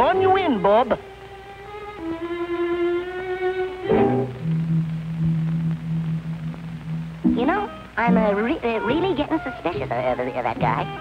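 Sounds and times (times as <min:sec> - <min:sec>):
held bowed-string notes: 0:00.0 - 0:11.0
person speaking: 0:07.3 - 0:11.0.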